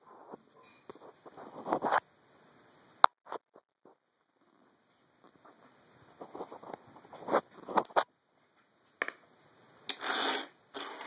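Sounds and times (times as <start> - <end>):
coins sliding on wooden table: 9.9 - 11.0.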